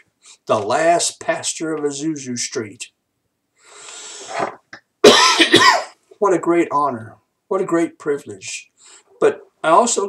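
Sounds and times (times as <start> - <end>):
soft noisy breath: 3.6 - 4.5, 8.7 - 9.2
man clearing throat: 5.0 - 6.0.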